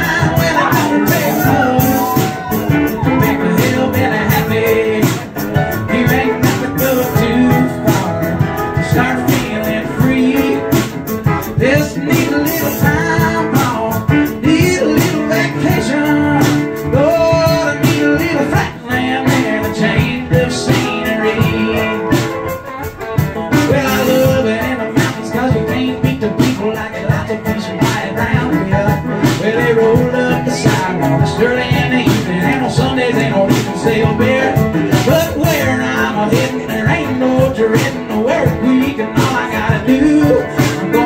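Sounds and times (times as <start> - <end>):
electric guitar: 0.0 - 41.0
man singing: 0.0 - 41.0
steady beat: 0.0 - 41.0.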